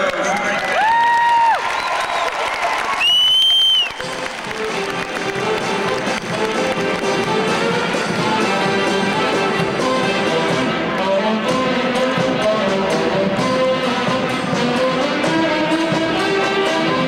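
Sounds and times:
crowd cheering: 0:00.0 - 0:08.0
loud whistles: 0:01.6 - 0:04.1
string band playing: 0:04.0 - 0:17.0.

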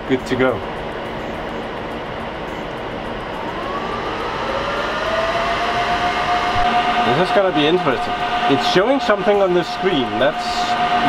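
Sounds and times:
server cooling fans whining: 0:00.0 - 0:11.0
whir of running servers: 0:00.0 - 0:11.0.

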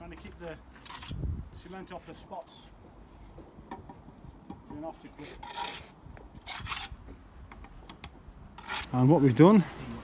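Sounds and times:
trowel scraping mortar: 0:05.2 - 0:07.0, 0:08.6 - 0:09.1.

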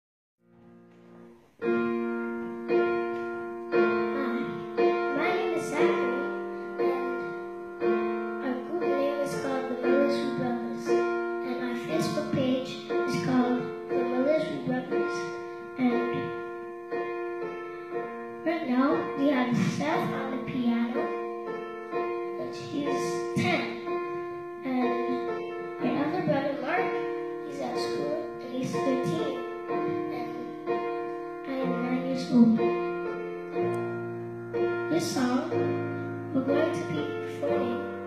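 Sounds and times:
piano chords: 0:00.4 - 0:38.0
boy speaking into a microphone: 0:04.1 - 0:07.3, 0:08.4 - 0:16.4, 0:18.4 - 0:21.1, 0:22.3 - 0:23.8, 0:24.6 - 0:30.5, 0:31.5 - 0:32.7, 0:34.9 - 0:35.6, 0:36.3 - 0:37.9.

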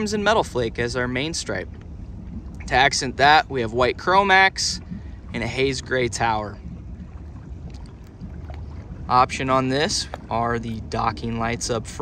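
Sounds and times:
boat engine idling: 0:00.0 - 0:12.0.

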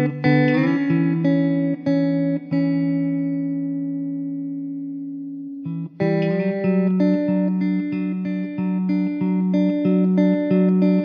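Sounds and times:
plucked guitar notes: 0:00.0 - 0:11.0.

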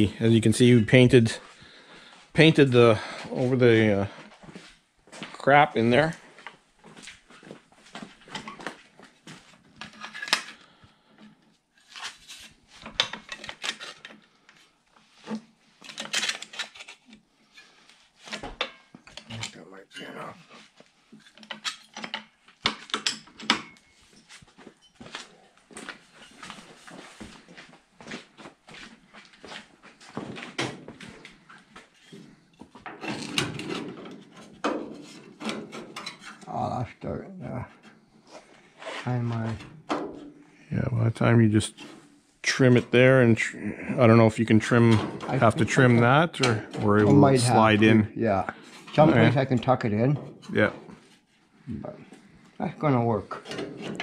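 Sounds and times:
hand tools clicking and clanking: 0:21.2 - 0:25.0, 0:32.8 - 0:36.5
sheet metal being handled: 0:30.1 - 0:36.5.

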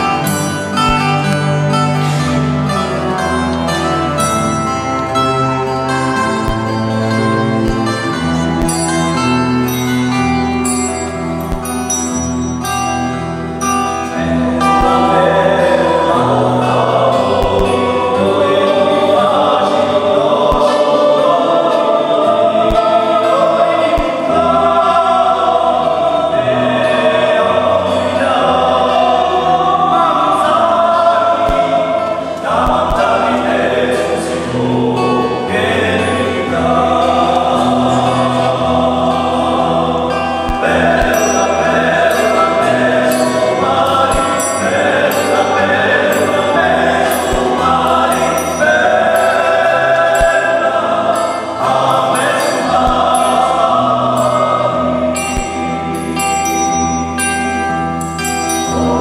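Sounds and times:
choir singing in close harmony: 0:13.6 - 0:56.6, 0:57.8 - 0:59.0.

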